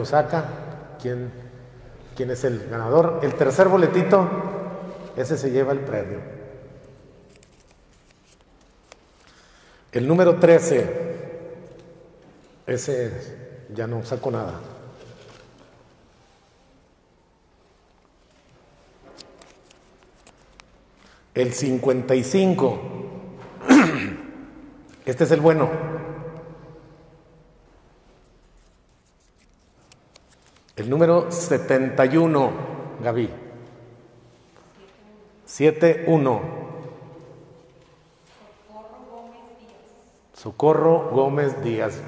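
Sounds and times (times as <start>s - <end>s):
paper tickets rustling and clicking: 7.3s - 9.4s, 18.0s - 21.2s, 28.6s - 30.9s.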